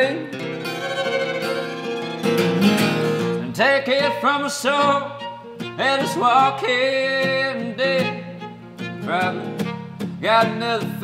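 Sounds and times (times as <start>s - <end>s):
acoustic guitar strumming: 0.0s - 11.0s
fiddle long bowed notes: 0.6s - 3.2s, 4.6s - 6.5s.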